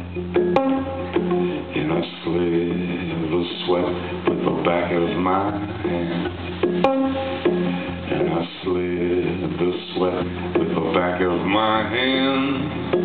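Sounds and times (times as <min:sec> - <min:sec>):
acoustic guitar: 0:00.0 - 0:13.0
man singing: 0:01.2 - 0:06.9, 0:07.9 - 0:13.0.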